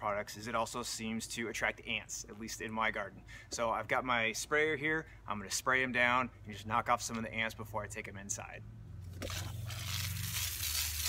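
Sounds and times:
hose spraying water: 9.2 - 11.0.

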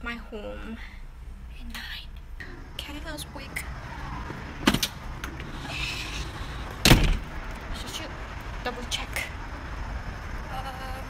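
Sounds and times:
door shutting with a bang: 4.2 - 5.5, 6.8 - 7.3.

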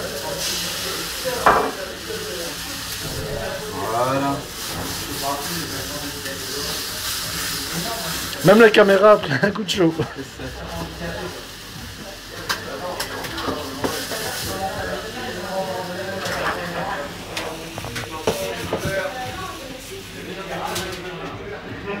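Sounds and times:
prawns sizzling in a frying pan: 0.0 - 22.0.

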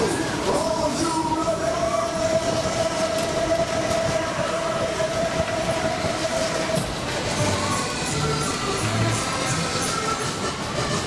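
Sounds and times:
ride cars rumbling on track: 0.0 - 11.0.

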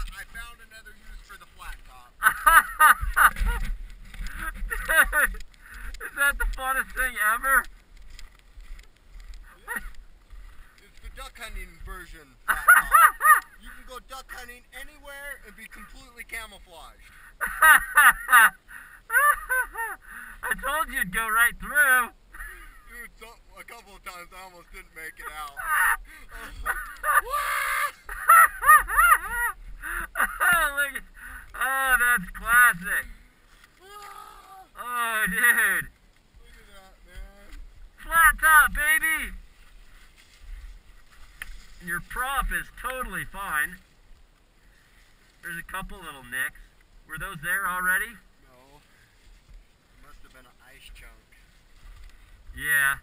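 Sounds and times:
man speaking: 20.5 - 22.2, 31.6 - 33.2, 34.0 - 39.4, 41.8 - 43.8, 45.4 - 48.8.

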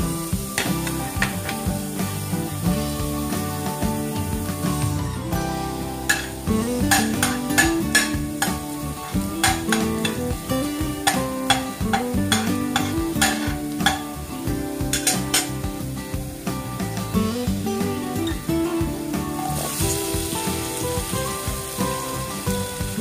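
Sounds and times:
background music: 0.0 - 23.0
vegetables sizzling in oil: 0.0 - 23.0
spatula scraping and tapping pan: 0.5 - 2.6, 6.0 - 14.2, 14.8 - 15.8.

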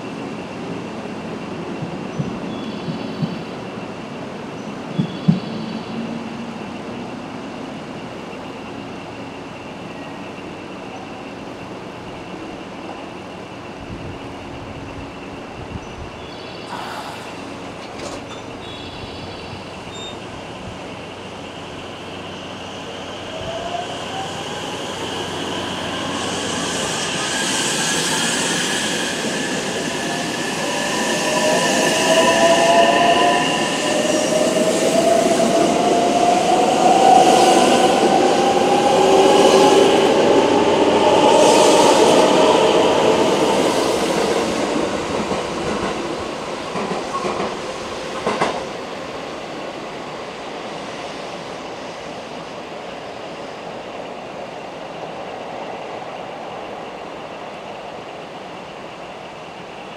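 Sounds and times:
electric train accelerating past: 0.0 - 59.9.

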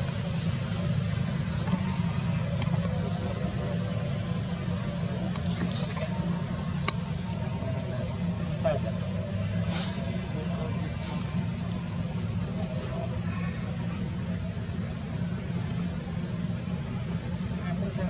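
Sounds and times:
faint human voices: 0.0 - 18.0
steady low rumble: 0.0 - 18.0.

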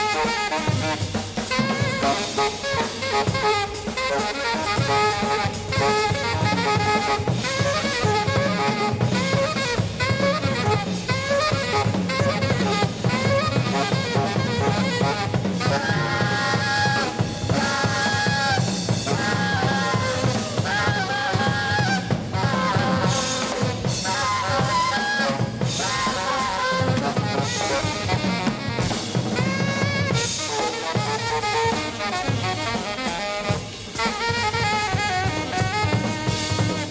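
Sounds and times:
alto saxophone: 0.0 - 36.9
drum kit: 0.0 - 36.9
piano: 0.0 - 36.9.

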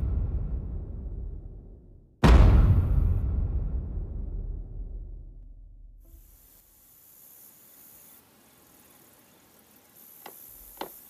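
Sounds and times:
faint high hiss: 6.0 - 11.0.

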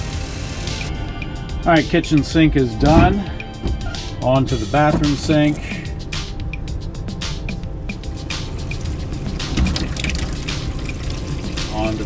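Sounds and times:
background music: 0.0 - 12.0
faucet running into sink: 8.8 - 12.0.

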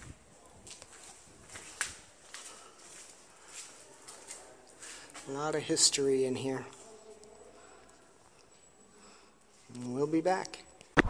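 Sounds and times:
footsteps on stone floor: 0.0 - 5.4.

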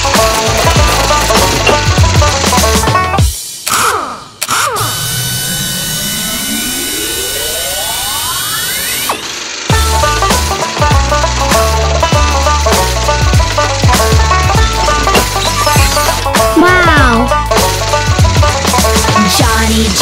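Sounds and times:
cartoon rising pitch effect: 4.0 - 9.3, 15.2 - 17.3
children's music with steady beat: 9.7 - 20.0.

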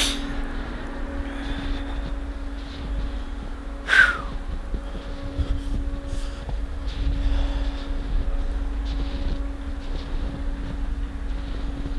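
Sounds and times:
low hum: 0.0 - 11.9
wind rumbling on microphone: 0.0 - 11.9.

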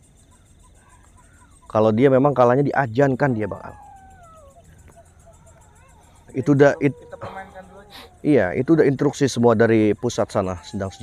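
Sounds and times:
faint animal calls: 0.0 - 11.0.

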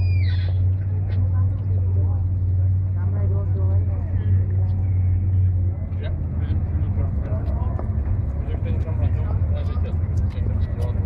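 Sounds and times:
vehicle engine humming: 0.0 - 11.0.

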